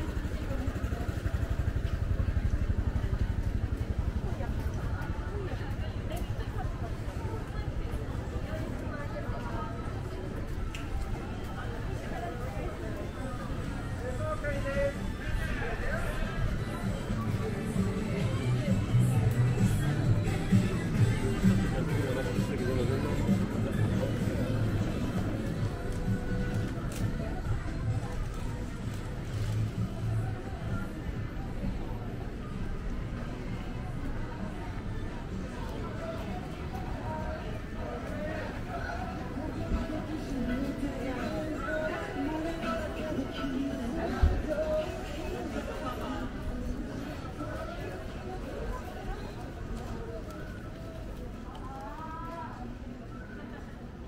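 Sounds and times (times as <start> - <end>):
small motorcycle engine running: 0.0 - 5.3
faint voices of passersby: 0.0 - 54.0
low street rumble: 0.0 - 54.0.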